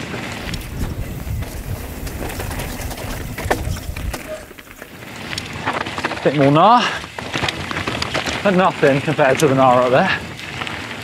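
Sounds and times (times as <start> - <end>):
bike chain and frame rattling: 0.0 - 11.0
bike tyres rumbling on dirt: 0.0 - 11.0.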